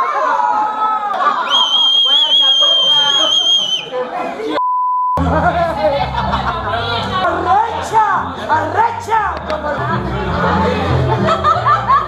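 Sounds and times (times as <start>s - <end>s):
party chatter: 1.1s - 4.6s, 5.2s - 12.0s
high steady whistle: 1.5s - 4.0s
test-tone beep: 4.6s - 5.3s.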